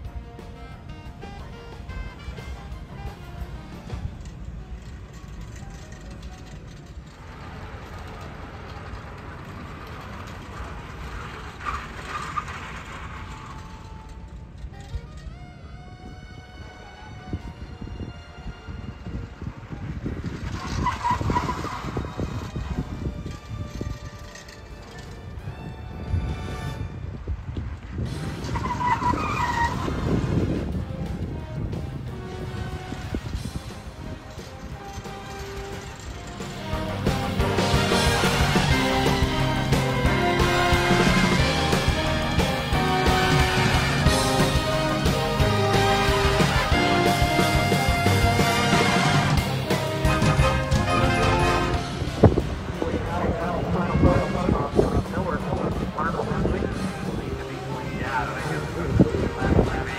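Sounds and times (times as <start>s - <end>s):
background music: 0.0s - 7.2s, 13.8s - 19.6s, 30.5s - 59.9s
tyres squealing: 0.6s - 17.8s, 20.4s - 25.8s, 28.4s - 30.2s
car engine running: 33.4s - 59.9s.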